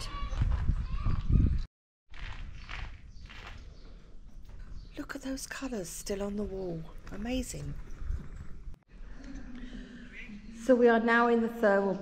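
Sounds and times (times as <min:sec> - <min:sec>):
footsteps walking: 0:02.1 - 0:04.8.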